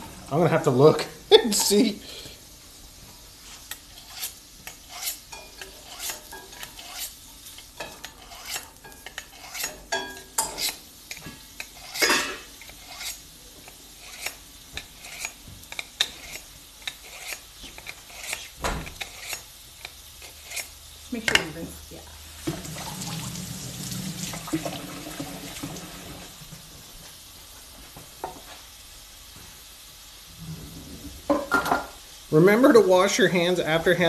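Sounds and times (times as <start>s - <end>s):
kitchen utensils tapping: 8.8s - 11.4s.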